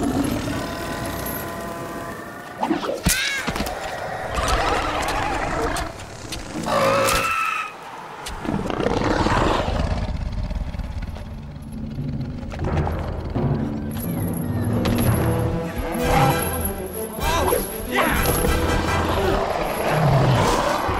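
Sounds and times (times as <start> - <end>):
monsters roaring and screeching: 0.0 - 10.9, 18.2 - 20.9
orchestral music: 12.7 - 20.9.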